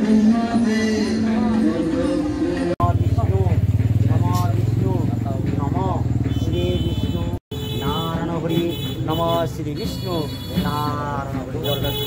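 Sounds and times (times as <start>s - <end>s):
people's voices: 0.0s - 12.0s
engine running with low rumble: 2.8s - 7.2s.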